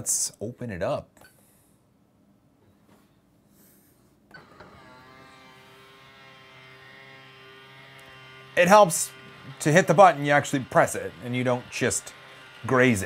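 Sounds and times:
small electric motor whirring: 4.3s - 13.0s.

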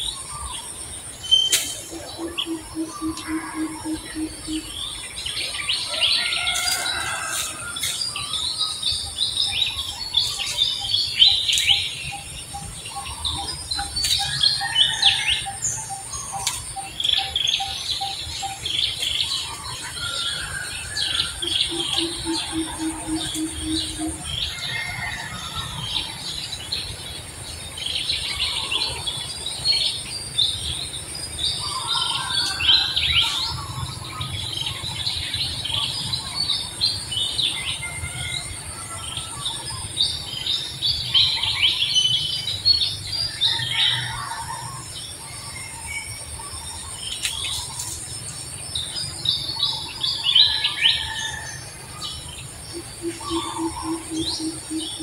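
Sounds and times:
birds chirping and calling: 0.0s - 55.0s.

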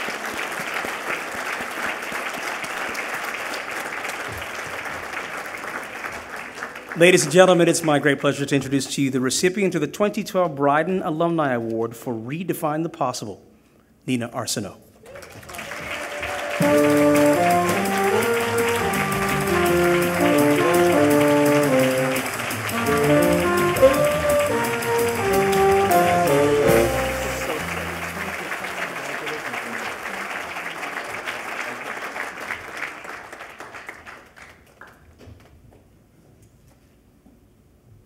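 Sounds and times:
audience applauding: 0.0s - 8.8s, 15.0s - 35.1s
music with melody and bass: 16.6s - 28.5s.

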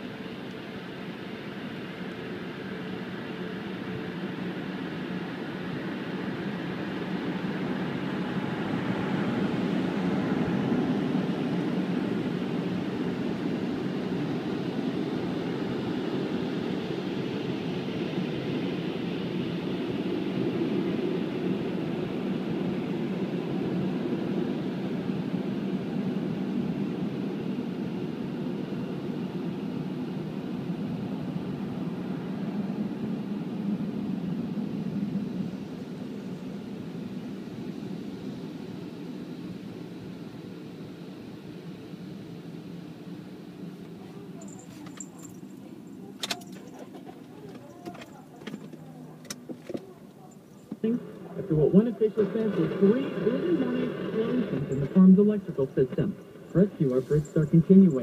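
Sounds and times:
car wash blowers rushing air: 0.0s - 45.8s, 48.0s - 58.0s.

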